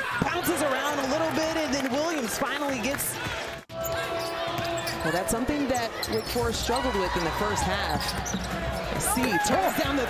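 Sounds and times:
basketball court sounds: 0:00.0 - 0:10.0
crowd noise: 0:00.0 - 0:10.0.

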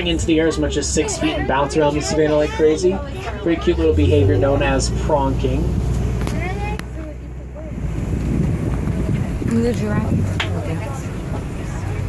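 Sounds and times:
truck engine rumble: 0:00.0 - 0:12.0.

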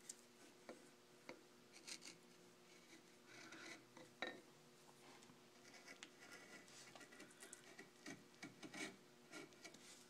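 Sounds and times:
gouge scraping wood: 0:05.6 - 0:09.9.

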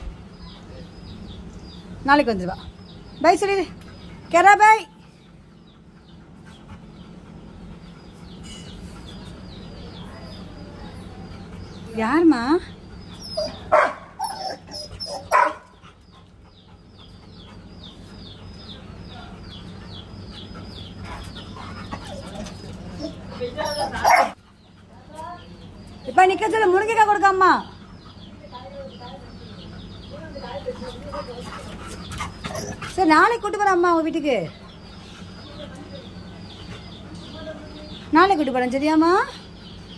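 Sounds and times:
bird chirping: 0:00.0 - 0:39.9
dog whining: 0:13.1 - 0:15.6, 0:21.5 - 0:24.4, 0:32.1 - 0:33.0
dog barking: 0:13.4 - 0:15.7, 0:23.8 - 0:24.4.

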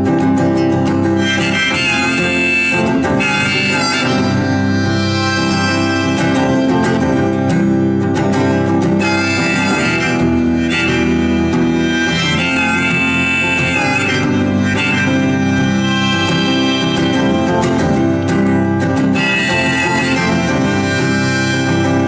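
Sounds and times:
harmonica wailing: 0:00.0 - 0:22.0
strummed acoustic guitar: 0:00.0 - 0:22.0.

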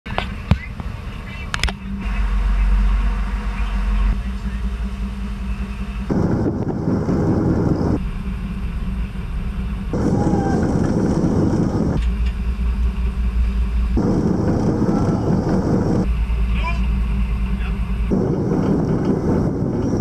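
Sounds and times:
boat engine running: 0:00.1 - 0:20.0
wind rushing: 0:06.1 - 0:08.0, 0:14.0 - 0:16.1, 0:18.1 - 0:20.0.

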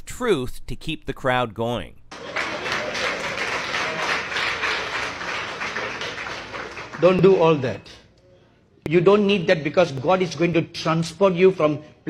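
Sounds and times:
audience applauding: 0:02.1 - 0:07.6.

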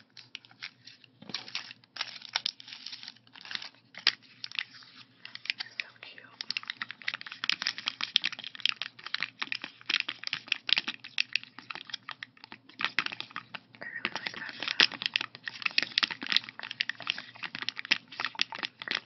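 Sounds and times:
fingers crinkling plastic stickers: 0:00.0 - 0:19.0.

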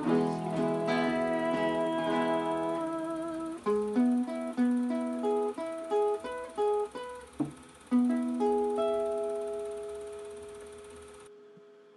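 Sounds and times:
acoustic guitar notes ringing out: 0:00.0 - 0:11.9.

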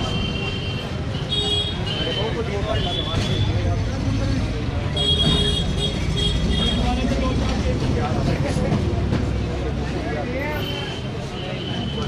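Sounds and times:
traffic rumble: 0:00.0 - 0:12.0
people talking: 0:01.8 - 0:12.0.

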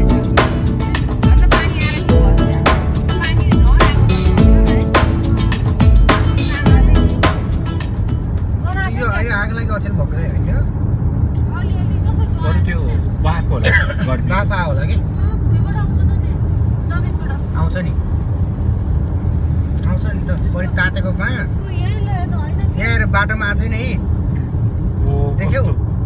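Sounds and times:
indistinct voices talking: 0:00.0 - 0:09.0
car driving rumble: 0:00.0 - 0:26.0.

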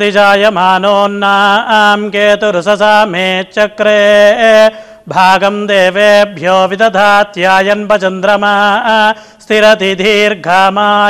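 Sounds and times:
person chanting mantras: 0:00.0 - 0:11.0.

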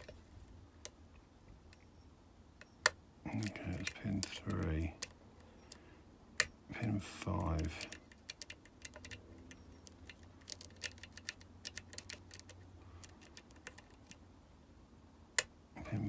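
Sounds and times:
lock pick metallic clicks: 0:07.4 - 0:14.2.

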